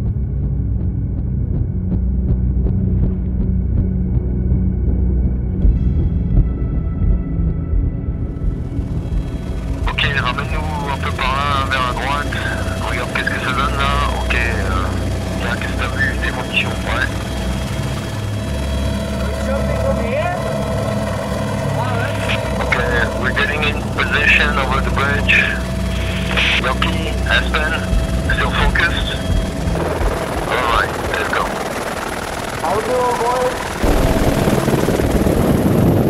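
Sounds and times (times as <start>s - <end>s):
helicopter engine and rotor: 7.6s - 36.0s
people talking: 9.9s - 17.2s, 19.2s - 20.4s, 21.8s - 29.2s, 30.4s - 31.6s, 32.6s - 33.6s.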